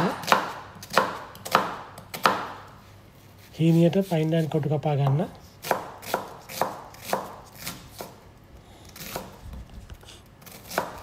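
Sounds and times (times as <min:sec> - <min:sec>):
knife chopping on cutting board: 0:00.0 - 0:02.7, 0:05.0 - 0:08.2, 0:09.0 - 0:09.4, 0:10.4 - 0:11.0.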